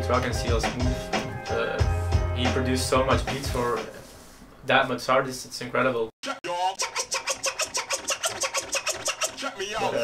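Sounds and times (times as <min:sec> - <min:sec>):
vinyl record scratching: 0:06.2 - 0:10.0.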